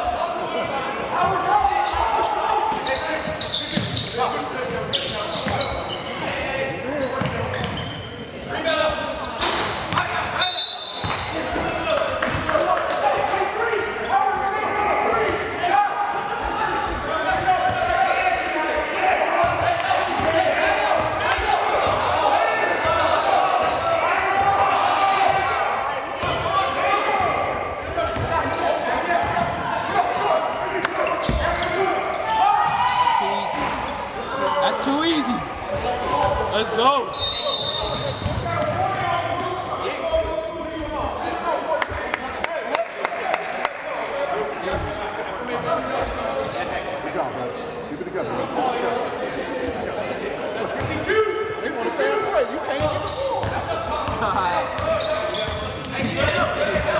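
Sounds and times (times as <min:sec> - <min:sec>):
players shouting and chatter: 0:00.0 - 0:56.9.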